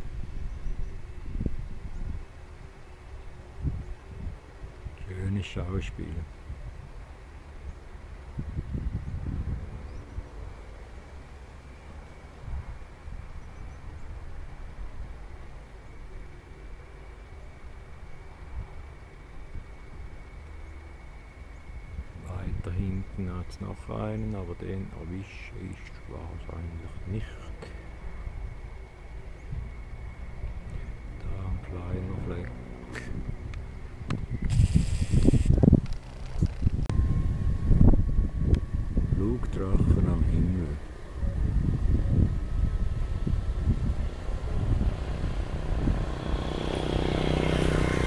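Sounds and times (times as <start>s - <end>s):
wind buffeting microphone: 0.0s - 2.8s, 3.4s - 7.1s, 8.2s - 10.4s, 21.8s - 27.2s, 29.3s - 48.0s
faint steady high tone: 9.8s - 35.6s, 36.9s - 42.8s
faint high-pitched tone: 36.9s - 42.3s.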